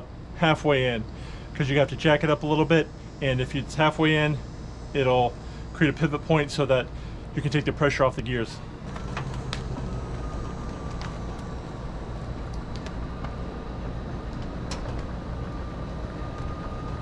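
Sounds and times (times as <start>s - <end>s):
electric motor running with whine: 1.7s - 17.0s.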